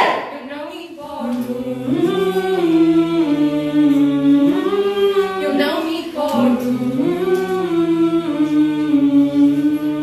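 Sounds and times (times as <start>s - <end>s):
young voices singing a cappella: 0.0s - 10.0s.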